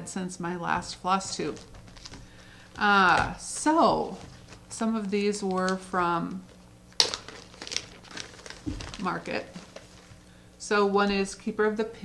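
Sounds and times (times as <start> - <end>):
packaging crinkling: 1.4 - 10.3.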